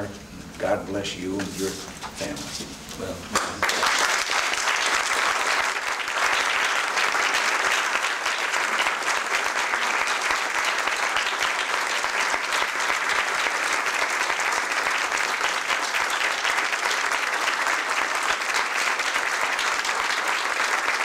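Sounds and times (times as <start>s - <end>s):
audience applauding: 3.3s - 21.0s.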